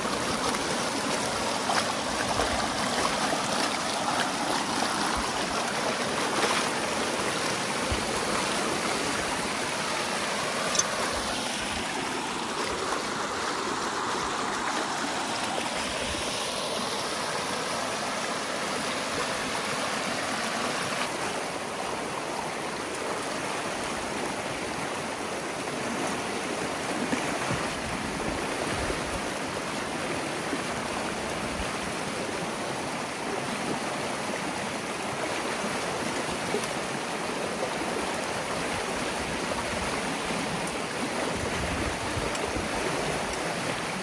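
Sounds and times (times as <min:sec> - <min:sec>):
creek water rushing over cascade: 0:00.0 - 0:44.0.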